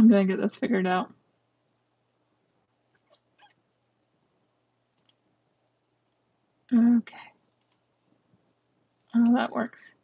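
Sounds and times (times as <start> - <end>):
faint clicks: 4.9 - 5.2, 7.5 - 7.9.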